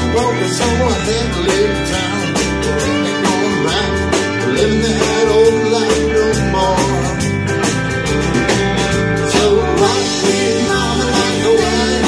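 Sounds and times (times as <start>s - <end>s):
country rock band playing: 0.0s - 12.0s
electric guitar lead line: 0.0s - 12.0s.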